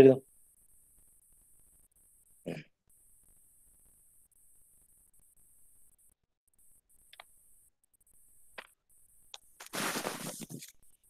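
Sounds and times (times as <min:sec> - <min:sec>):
person clearing throat: 0:02.5 - 0:02.7.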